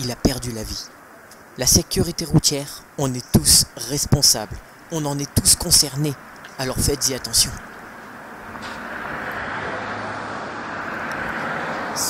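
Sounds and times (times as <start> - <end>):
passing vehicles rushing: 4.6 - 12.0.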